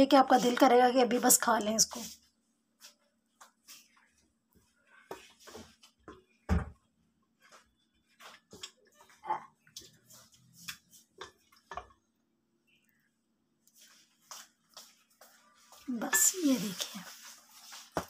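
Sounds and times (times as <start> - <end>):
spoon scraping and clinking on plate: 16.1 - 16.4.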